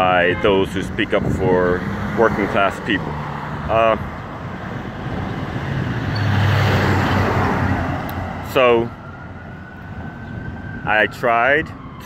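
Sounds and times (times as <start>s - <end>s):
vehicle passing by: 0.7s - 10.8s.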